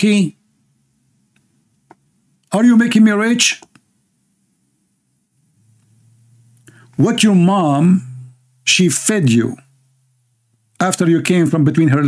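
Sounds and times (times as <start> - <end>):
faint low hum: 0.0 - 12.0
man breathing in: 6.6 - 7.0.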